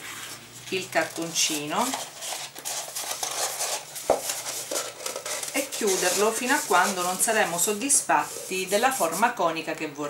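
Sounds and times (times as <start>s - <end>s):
card stock rustling and scraping: 0.0s - 9.4s.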